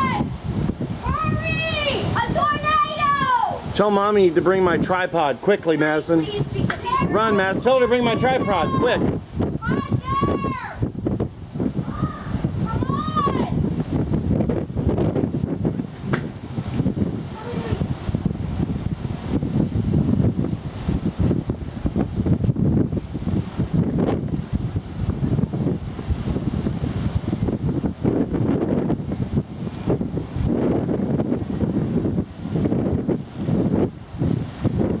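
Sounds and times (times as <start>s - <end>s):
gusty wind on microphone: 0.0s - 35.0s.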